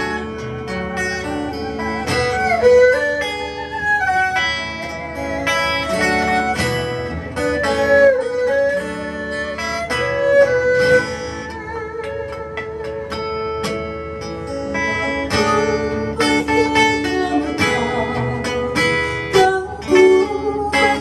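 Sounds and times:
acoustic guitar chords: 0.0 - 21.0
erhu bowed melody: 0.0 - 21.0.

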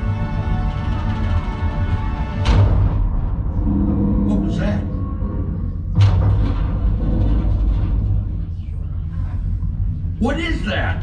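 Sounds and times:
dark dramatic soundtrack music: 0.0 - 11.0
deep steady rumble: 0.0 - 11.0.

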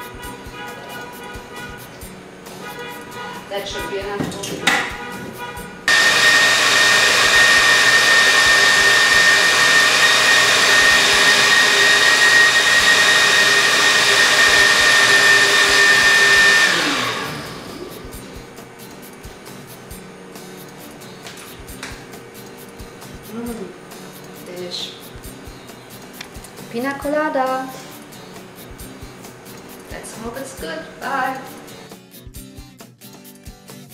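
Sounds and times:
blender whining at high speed: 5.9 - 18.4.

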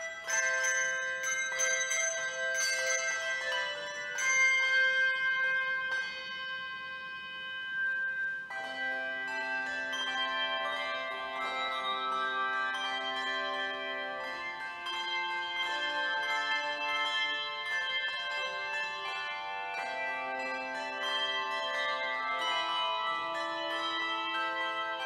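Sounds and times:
handbells ringing: 0.0 - 25.0.

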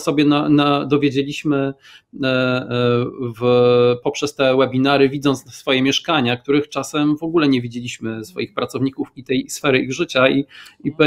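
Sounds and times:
man speaking hesitantly: 0.0 - 11.0.

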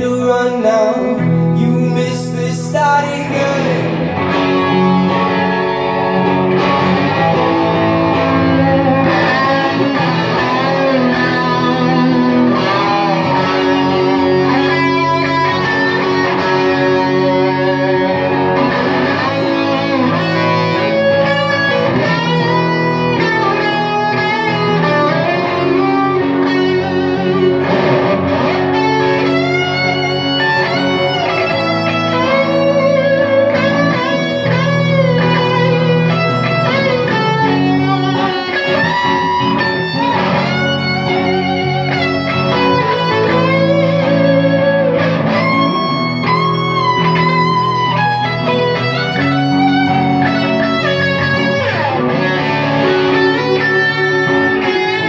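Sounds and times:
electric guitar chords: 0.0 - 55.0
electric violin melody: 3.1 - 55.0.

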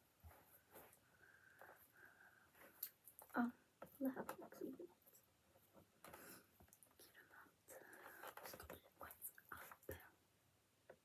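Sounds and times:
faint breathy whispering: 6.1 - 10.2.

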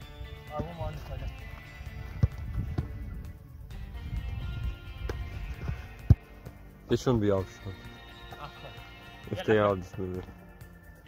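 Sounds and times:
background music: 0.0 - 11.0
football being kicked: 2.1 - 3.0, 5.0 - 6.2.

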